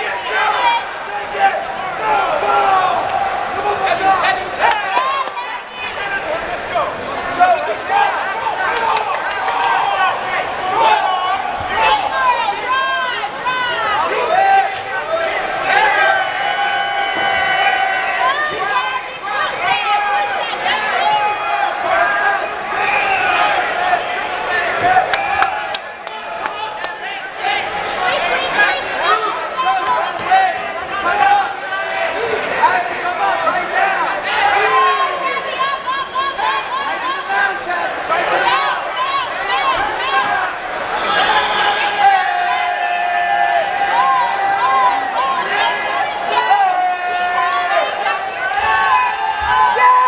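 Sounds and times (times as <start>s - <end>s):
crowd talking and shouting: 0.0s - 50.0s.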